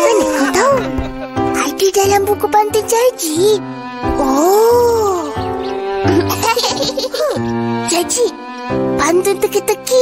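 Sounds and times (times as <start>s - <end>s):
background music: 0.0s - 10.0s
young child giggling: 6.1s - 7.4s.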